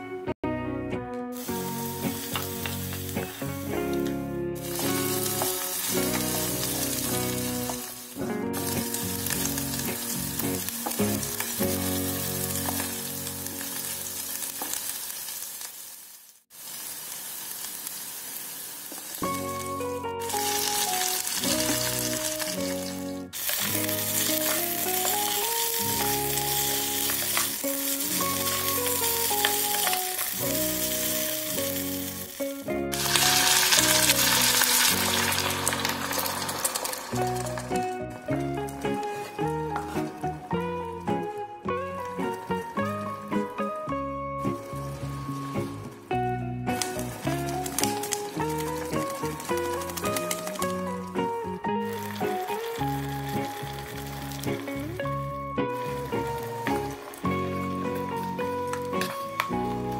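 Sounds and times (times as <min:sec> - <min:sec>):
background music: 0:00.0 - 0:14.6, 0:19.2 - 0:59.9
food sizzling in hot oil: 0:01.3 - 0:59.9.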